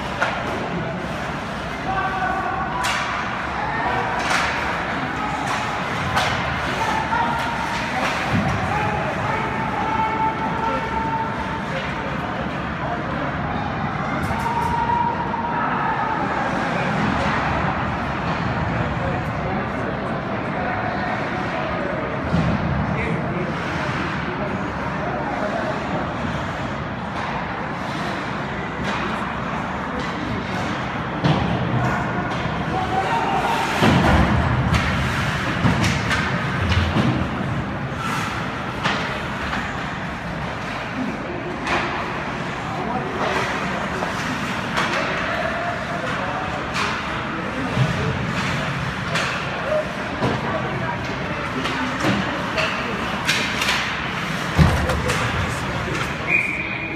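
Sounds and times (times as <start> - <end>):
crowd and game din in arena: 0.0 - 56.9
hockey sticks and puck knocking: 33.5 - 40.8, 43.1 - 56.2.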